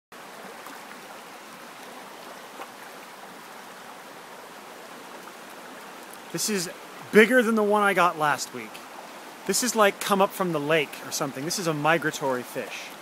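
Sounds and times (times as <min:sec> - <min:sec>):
stream water running over rocks: 0:00.1 - 0:13.0.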